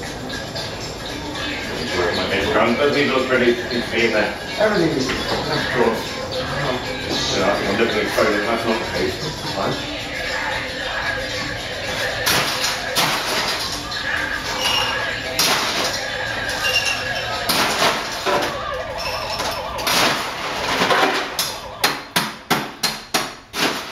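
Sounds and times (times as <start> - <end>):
bar music: 0.0 - 23.9
background voices: 1.1 - 21.8.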